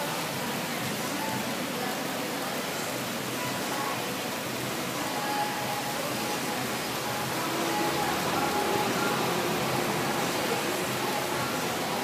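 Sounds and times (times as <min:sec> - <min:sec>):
steady background hiss: 0:00.0 - 0:12.0.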